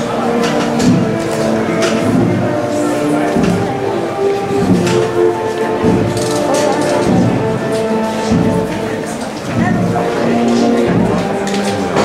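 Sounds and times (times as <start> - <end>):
band playing processional music: 0.0 - 12.0
crowd voices: 0.0 - 12.0.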